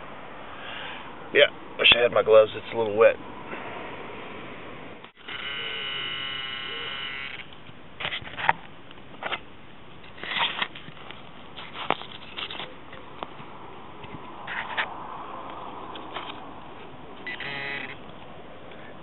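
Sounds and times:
metal detector buzzing tone: 5.2s - 7.5s, 17.2s - 18.0s.

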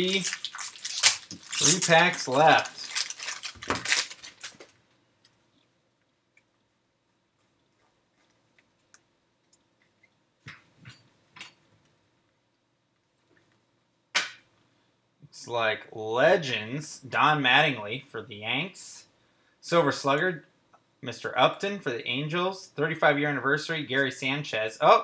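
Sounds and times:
foil wrapper tearing and crinkling: 0.0s - 4.7s
cards rustling: 0.0s - 4.8s.

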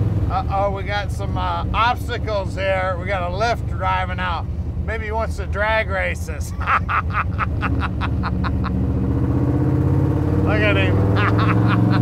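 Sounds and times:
car engine rumbling: 0.0s - 12.0s
man laughing: 6.4s - 8.9s, 11.0s - 12.0s.

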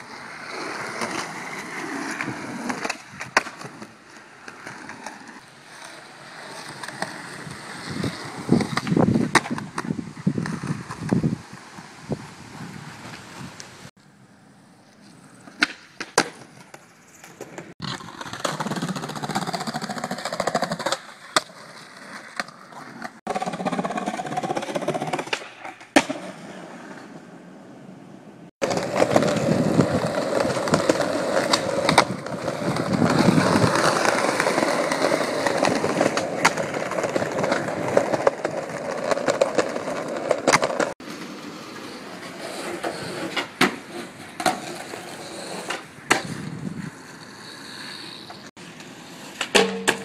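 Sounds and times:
skateboard wheels rolling: 0.0s - 50.0s
skateboard clacking on ground: 0.8s - 11.2s, 14.9s - 27.2s, 28.6s - 46.5s, 48.1s - 50.0s.

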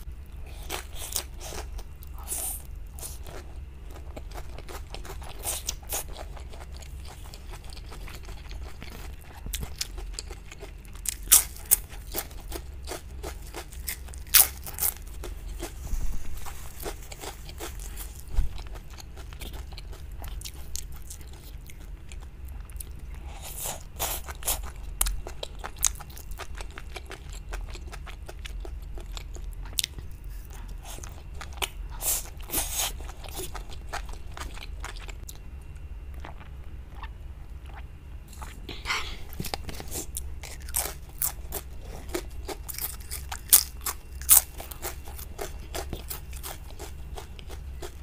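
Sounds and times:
chewing: 0.4s - 15.8s, 16.4s - 48.0s.

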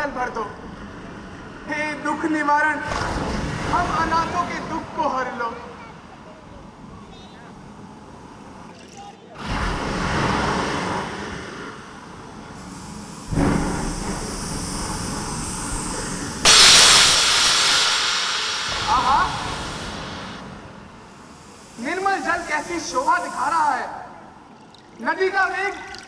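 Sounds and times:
rushing water sound effect: 2.9s - 5.0s, 9.4s - 11.8s.

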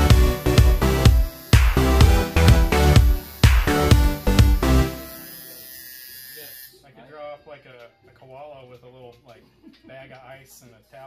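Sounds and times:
tattoo machine buzzing: 0.0s - 6.8s.

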